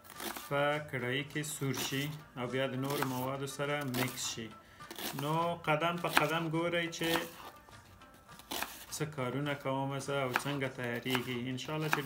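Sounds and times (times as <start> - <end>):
man speaking: 0.5 - 7.3.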